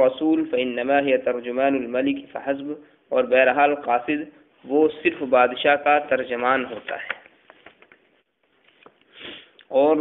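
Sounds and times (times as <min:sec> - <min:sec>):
man speaking: 0:00.0 - 0:07.3, 0:09.7 - 0:10.0
man's intake of breath: 0:09.0 - 0:09.6.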